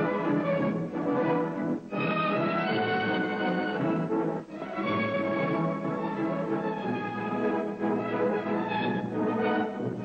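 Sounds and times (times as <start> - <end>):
orchestral ballet music: 0.0 - 10.0.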